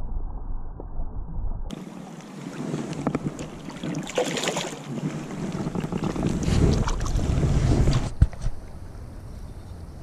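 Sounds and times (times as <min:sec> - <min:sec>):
wind rumbling on microphone: 0:00.0 - 0:04.2, 0:04.8 - 0:10.0
stream water splashing: 0:01.7 - 0:08.2.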